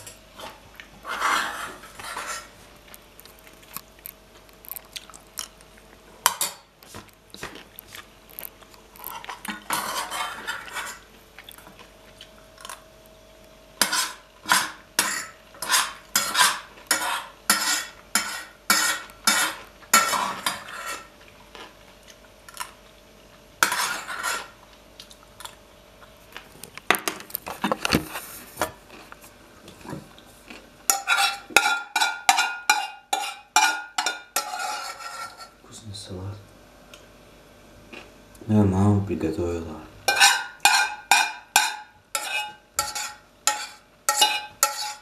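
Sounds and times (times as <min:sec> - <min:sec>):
cutlery clinking on enamel bowl: 0:30.9 - 0:35.5, 0:40.1 - 0:45.0.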